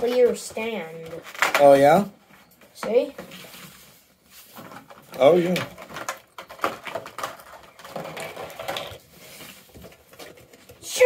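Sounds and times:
plastic packaging clicks and rustles: 0.0s - 2.1s, 4.6s - 11.0s.

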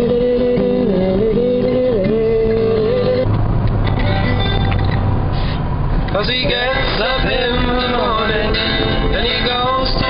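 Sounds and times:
music with wavering melody: 0.0s - 5.3s
car engine and tyres drone: 0.0s - 10.0s.

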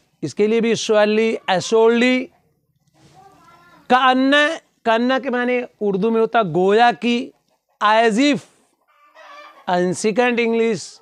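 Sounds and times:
man speaking: 0.1s - 2.3s, 3.9s - 8.6s, 9.7s - 11.0s.

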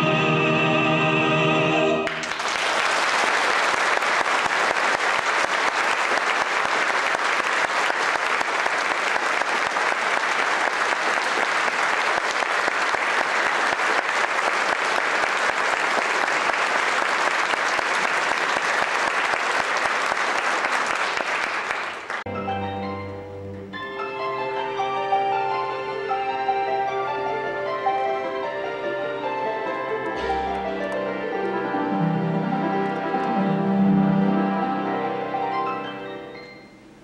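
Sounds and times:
orchestra playing: 0.0s - 2.4s, 22.3s - 37.0s
audience applauding: 2.0s - 22.3s.

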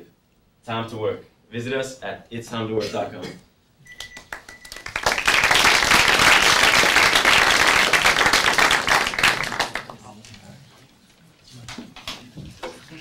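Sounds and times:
audience applauding: 4.0s - 10.0s.

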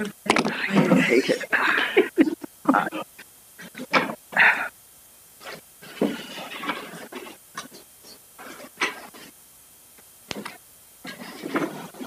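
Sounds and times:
close microphone noise: 0.0s - 12.0s.

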